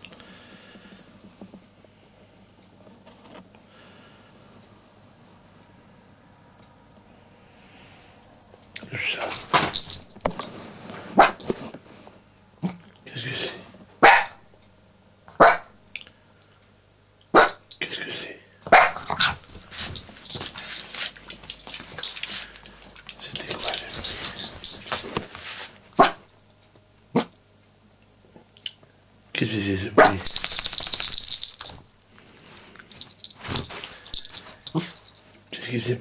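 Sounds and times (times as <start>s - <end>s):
collar bell jingling: 9.2s - 10.6s, 17.5s - 17.8s, 19.0s - 22.5s, 23.3s - 25.1s, 30.1s - 31.8s, 32.9s - 35.4s
small dog barking: 14.0s - 14.3s, 15.4s - 15.7s, 18.7s - 19.1s.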